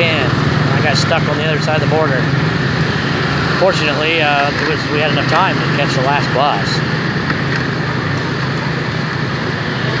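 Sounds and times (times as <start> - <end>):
motor scooter engine running: 0.0 - 10.0
road and wind noise: 0.0 - 10.0.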